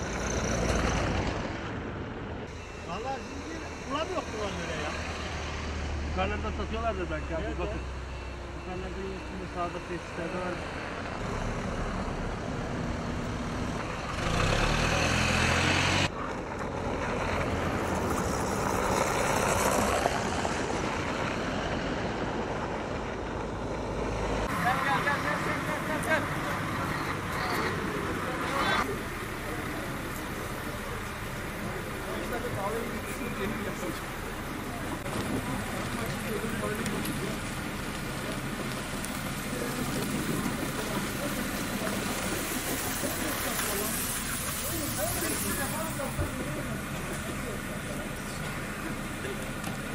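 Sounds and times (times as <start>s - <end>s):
cars and trucks driving past: 0.0s - 49.9s
outdoor noise: 0.0s - 49.9s
loud engine passing close: 10.3s - 49.9s.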